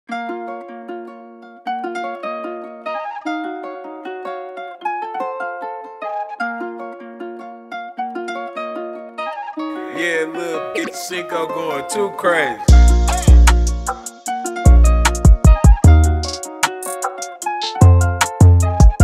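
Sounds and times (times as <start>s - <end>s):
plucked guitar melody: 0.1s - 19.0s.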